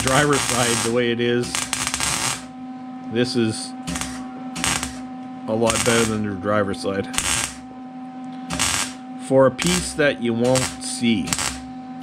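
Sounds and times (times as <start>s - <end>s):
welder arc crackling on steel: 0.0s - 2.5s, 3.9s - 6.2s, 7.2s - 7.7s, 8.5s - 9.0s, 9.6s - 11.7s
steady hum: 0.0s - 12.0s.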